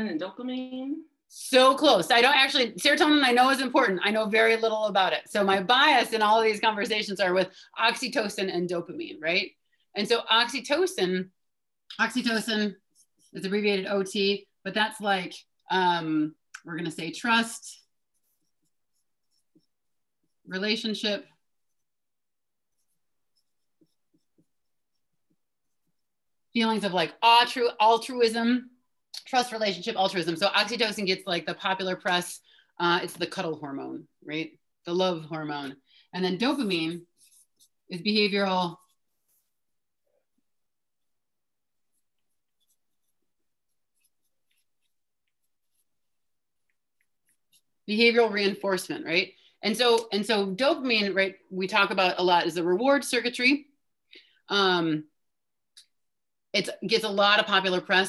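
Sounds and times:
marker writing on paper: 0:11.9 - 0:15.7, 0:16.5 - 0:28.2, 0:35.5 - 0:39.6, 0:41.8 - 0:46.0, 0:46.7 - 0:48.2
marker squeaking on paper: 0:16.8 - 0:21.9, 0:22.6 - 0:26.1, 0:41.9 - 0:45.9.

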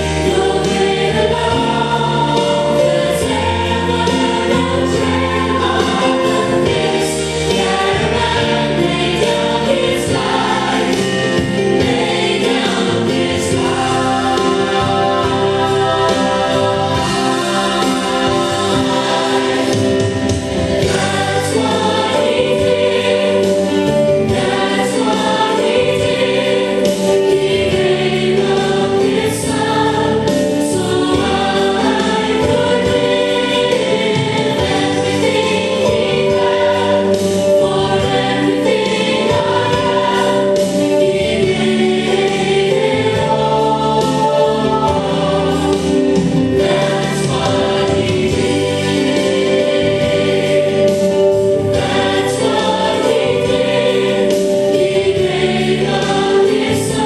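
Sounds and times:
choir singing gospel with band: 0:00.0 - 0:57.0.

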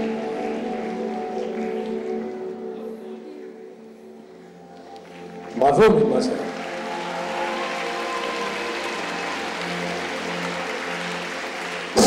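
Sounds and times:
audience applauding: 0:00.0 - 0:03.0, 0:04.8 - 0:12.0
faint music: 0:00.0 - 0:12.0.

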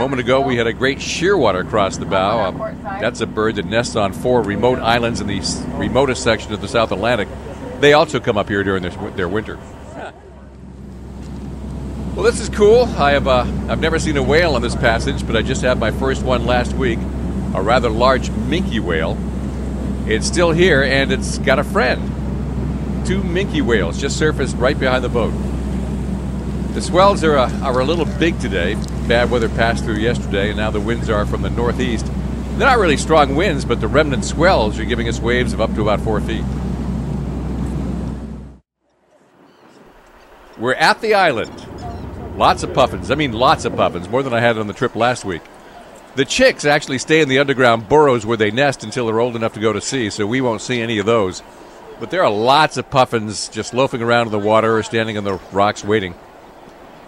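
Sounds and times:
boat engine droning: 0:00.0 - 0:57.0
wind buffeting microphone: 0:10.6 - 0:38.6, 0:41.4 - 0:46.2.

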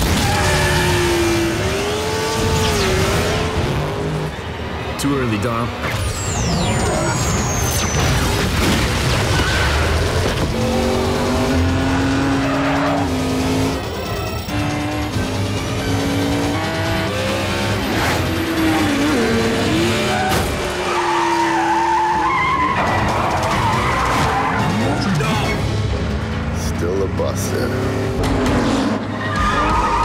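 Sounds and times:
car engines revving: 0:00.0 - 0:30.0
film score music: 0:21.6 - 0:30.0.

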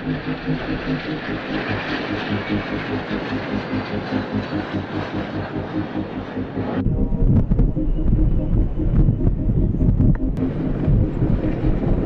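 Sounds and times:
jet aircraft flying past: 0:00.0 - 0:12.0.

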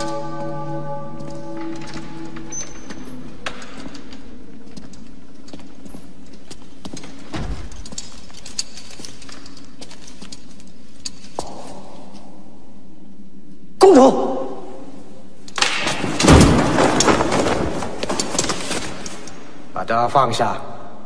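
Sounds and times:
low background noise: 0:00.0 - 0:21.0.

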